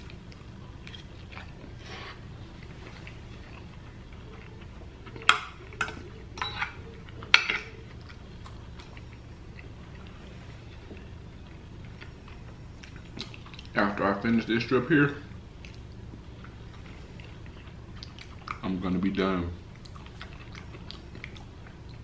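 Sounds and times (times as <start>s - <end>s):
close chewing: 0.0s - 14.0s, 15.2s - 22.0s.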